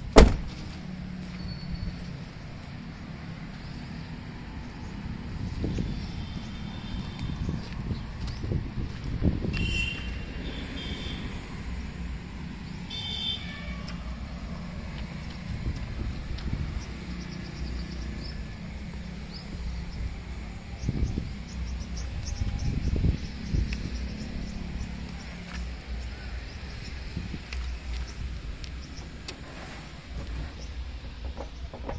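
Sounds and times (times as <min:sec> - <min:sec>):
low engine hum: 0:00.0 - 0:31.9
low rumbles: 0:13.7 - 0:31.9.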